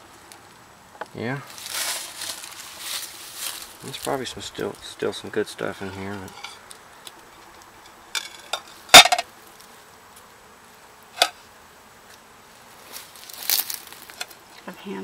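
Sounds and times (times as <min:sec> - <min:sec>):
faint steady buzz: 0:00.0 - 0:15.0
scraping and rattling: 0:05.8 - 0:06.6, 0:07.3 - 0:09.2.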